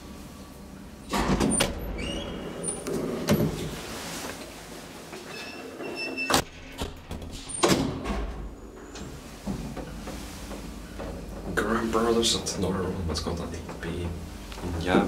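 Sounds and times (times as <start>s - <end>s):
elevator doors sliding and clattering: 0.0s - 15.0s.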